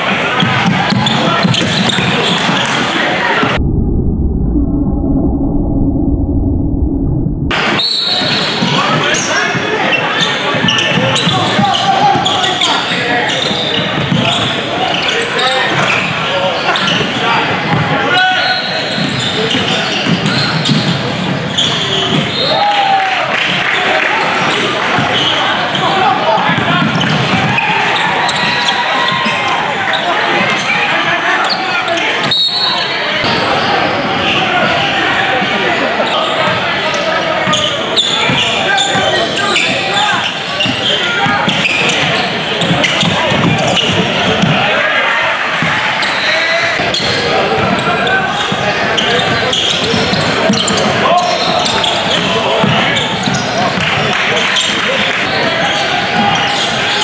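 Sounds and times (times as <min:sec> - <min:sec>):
crowd talking and shouting: 0:00.0 - 0:57.0.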